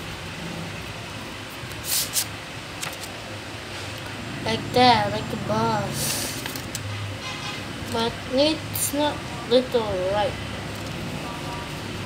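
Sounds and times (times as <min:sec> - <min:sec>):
paper rustling: 0:01.7 - 0:03.2.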